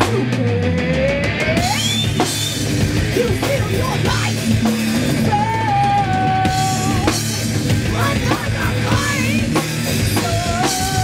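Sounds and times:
bass guitar: 0.0s - 11.0s
distorted electric guitar: 0.0s - 11.0s
drum kit: 0.0s - 11.0s
woman singing: 3.1s - 4.5s, 5.2s - 7.3s, 7.9s - 11.0s.

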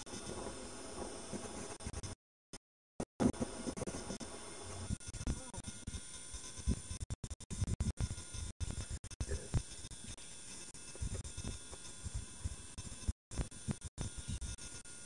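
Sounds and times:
faint high whine: 3.2s - 7.0s.

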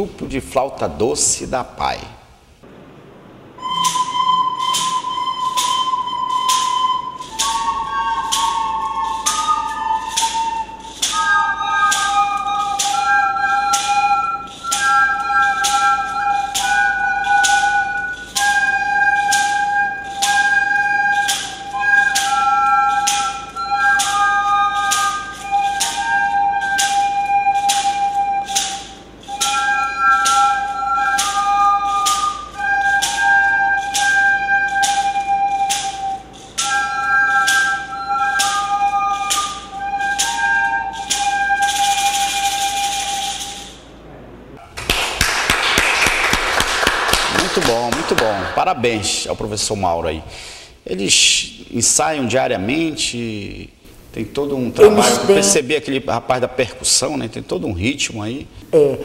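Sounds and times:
shaker strokes: 3.6s - 43.9s
recorders playing a melody: 3.6s - 44.6s, 54.8s - 55.6s
people clapping: 44.6s - 49.2s.

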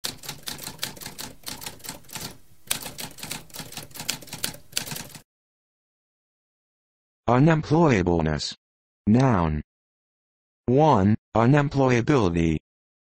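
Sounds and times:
typewriter typing: 0.0s - 5.2s.

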